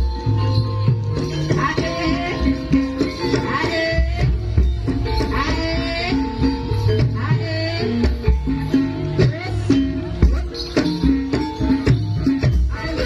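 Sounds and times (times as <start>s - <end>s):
gamelan ensemble playing: 0.0s - 13.0s.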